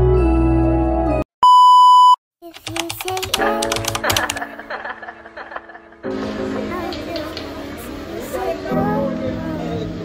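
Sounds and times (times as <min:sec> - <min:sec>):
quick clicks and ticks: 0:02.4 - 0:04.4.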